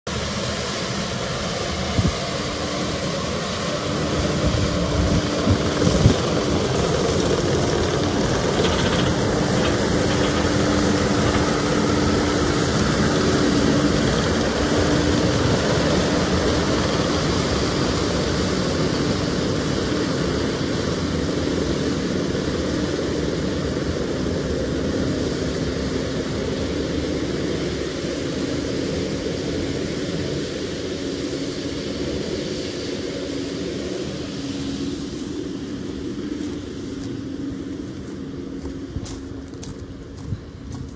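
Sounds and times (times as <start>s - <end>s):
diesel engine running: 0.1s - 31.3s.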